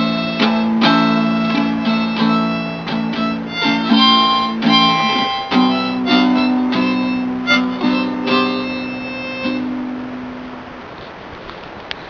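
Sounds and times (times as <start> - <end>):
harmonica notes: 0.0 - 10.4
strummed guitar chords: 0.0 - 10.9.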